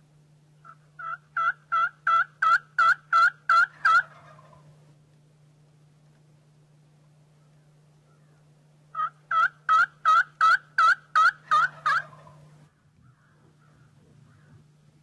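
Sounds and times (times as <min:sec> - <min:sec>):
turkey yelps: 0:00.6 - 0:04.7, 0:08.9 - 0:12.5.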